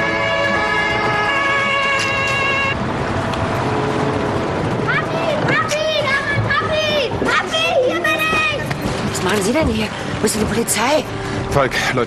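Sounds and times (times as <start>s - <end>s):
children shouting: 4.8s - 8.8s.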